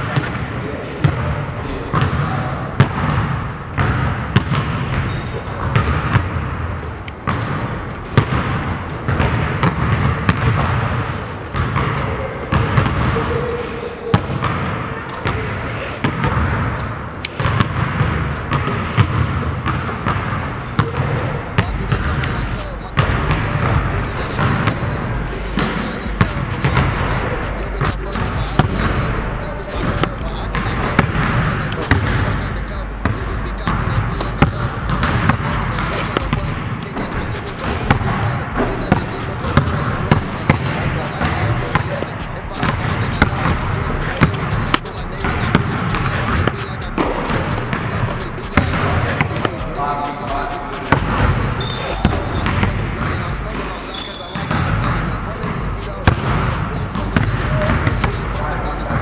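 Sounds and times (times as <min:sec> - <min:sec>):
basketballs bouncing on gym floor: 0:00.0 - 0:59.0.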